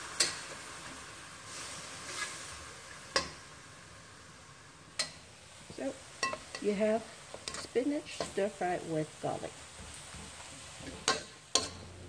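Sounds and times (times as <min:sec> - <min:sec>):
vegetables sizzling in a wok: 0:00.0 - 0:12.0.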